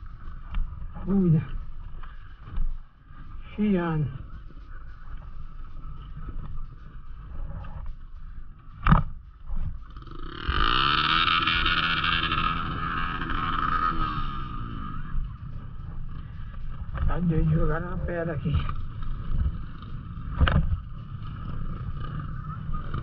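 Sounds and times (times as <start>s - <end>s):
dirt bike engine revving: 8.6s - 23.0s.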